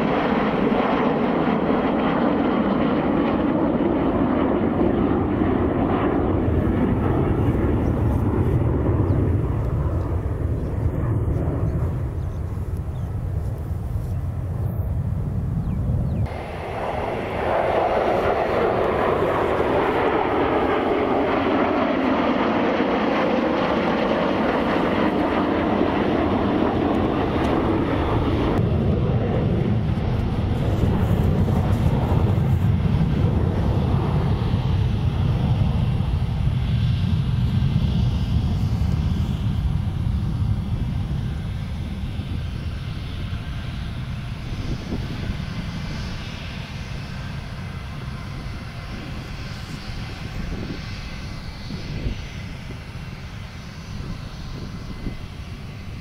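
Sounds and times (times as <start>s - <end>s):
fighter jets roaring overhead: 0.0s - 56.0s.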